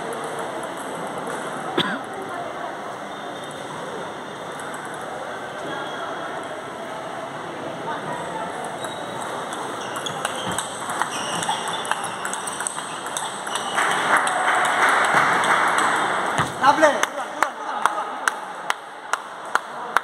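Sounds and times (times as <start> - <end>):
voices in a hall: 0.0 - 20.0
ping pong ball clicking: 8.6 - 15.9.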